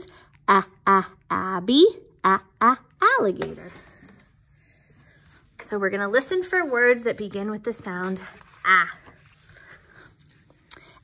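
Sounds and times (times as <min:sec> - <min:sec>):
book page turning: 0:07.9 - 0:11.0.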